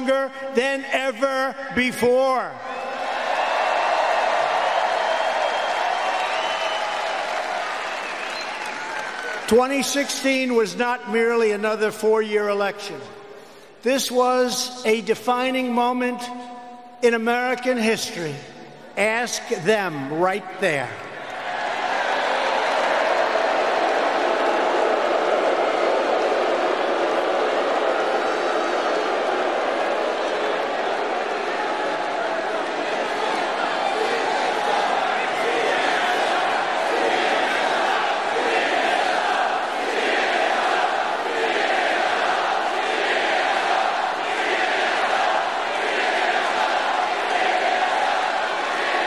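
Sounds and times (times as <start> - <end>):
crowd applauding and cheering: 2.7 - 9.8, 20.9 - 49.0
scattered shouts: 31.2 - 49.0.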